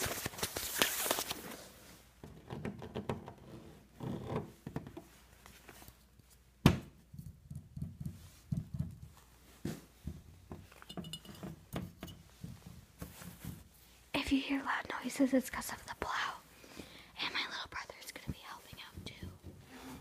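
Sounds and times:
glass jars clinking: 10.8s - 12.2s
soft taps and knocks on hard surface: 18.2s - 19.6s.

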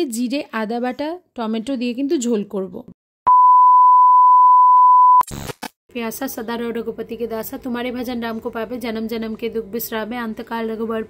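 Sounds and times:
loud electronic beep: 3.3s - 5.5s.

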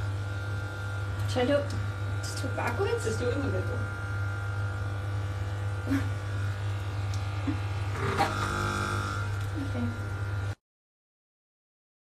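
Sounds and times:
electric hair clippers humming: 0.0s - 10.6s.

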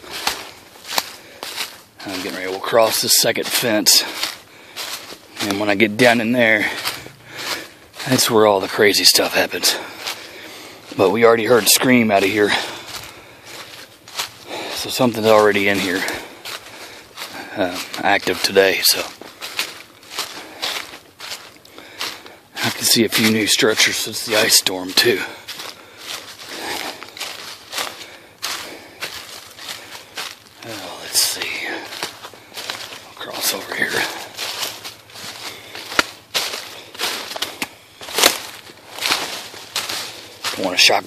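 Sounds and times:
footsteps crunching dry leaves: 0.0s - 41.0s.

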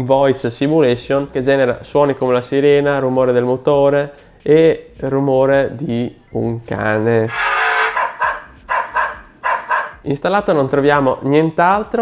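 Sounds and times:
dog barking through phone speaker: 7.4s - 10.1s.

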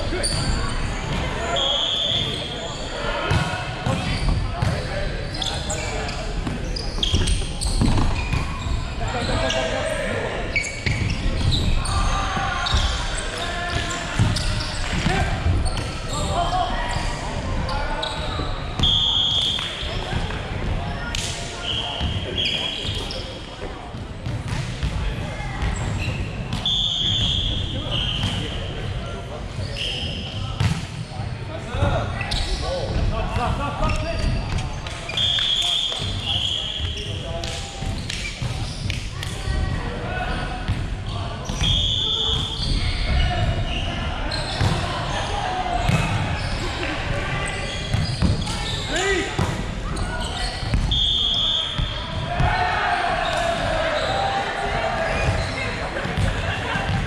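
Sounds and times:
sneakers squeaking on court: 0.1s - 9.7s, 10.5s - 20.2s, 21.6s - 23.4s, 33.8s - 39.0s, 40.6s - 52.6s, 55.1s - 57.0s
players calling out: 40.0s - 57.0s.

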